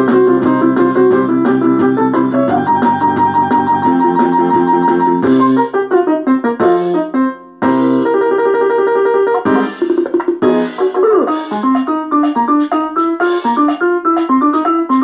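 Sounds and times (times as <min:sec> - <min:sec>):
electronic keyboard demo melody: 0:00.0 - 0:15.0.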